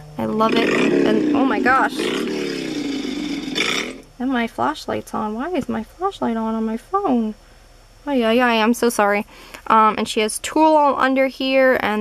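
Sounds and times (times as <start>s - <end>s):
woman's growly exclamation: 0.4s - 4.0s.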